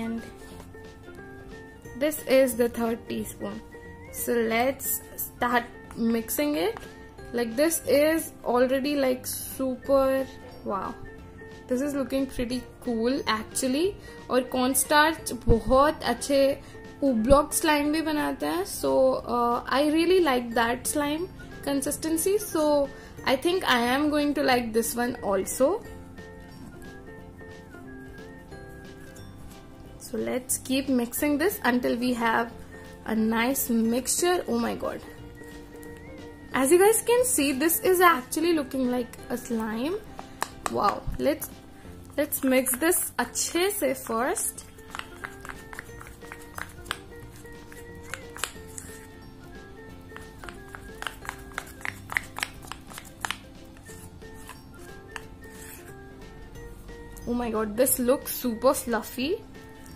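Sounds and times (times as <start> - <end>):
light background music: 0.0 - 59.9
metal spoon stirring slime: 37.0 - 56.1, 59.6 - 59.9.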